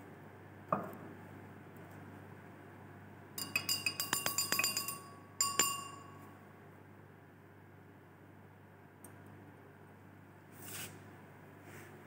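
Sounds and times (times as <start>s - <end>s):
glass rod clinking in beaker: 3.4s - 6.3s.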